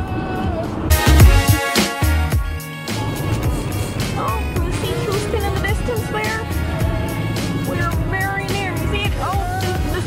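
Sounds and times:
song with steady bass beat: 0.9 - 10.0.

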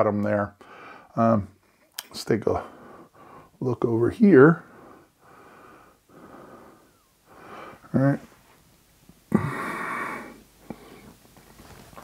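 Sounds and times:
faint breathing: 0.6 - 1.9, 2.6 - 3.6, 4.6 - 8.6, 9.3 - 11.3.

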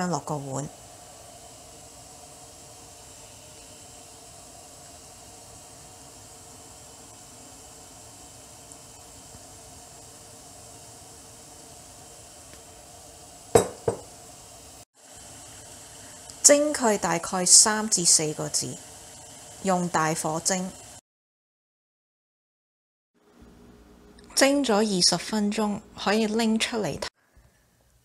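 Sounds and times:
steamer humming: 0.0 - 21.0
glass clinking on porcelain: 13.6 - 14.0.

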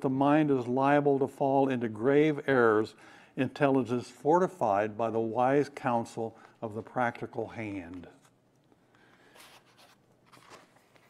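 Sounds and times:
book pages rustling: 6.4 - 8.4, 9.0 - 11.0.

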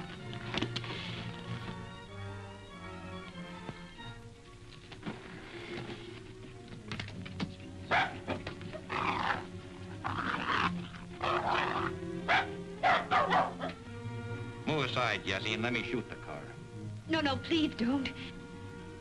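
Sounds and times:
film music: 0.0 - 19.0
small dog yapping: 7.9 - 9.4, 11.2 - 13.8.

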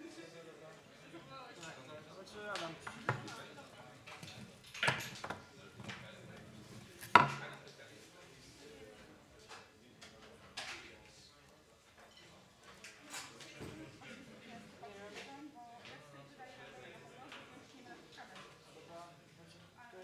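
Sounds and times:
murmur of people talking: 0.0 - 20.0.

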